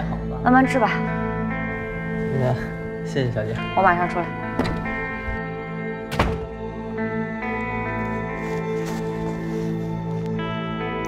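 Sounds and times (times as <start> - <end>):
background music with held notes: 0.0 - 11.0
door thunking shut: 4.5 - 5.4, 6.1 - 6.6.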